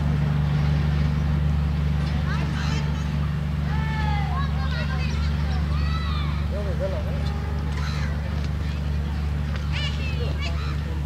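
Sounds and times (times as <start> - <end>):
train low drone: 0.0 - 11.0.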